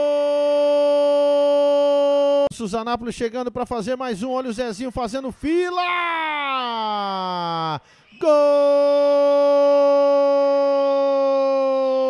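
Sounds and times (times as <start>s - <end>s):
man shouting long goal call: 0.0s - 2.5s, 5.6s - 12.0s.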